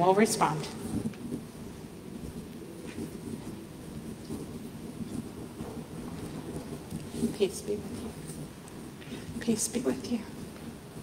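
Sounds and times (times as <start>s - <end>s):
microphone rubbing against clothing: 0.4s - 11.0s.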